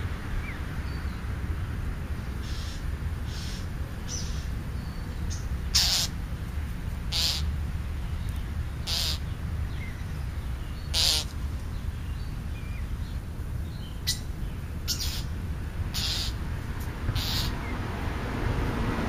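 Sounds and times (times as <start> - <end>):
harsh bird call: 5.7 - 6.2, 7.1 - 7.5, 8.8 - 9.3, 10.8 - 11.3, 15.9 - 16.4, 17.1 - 17.6
small bird chirps: 7.2 - 15.3.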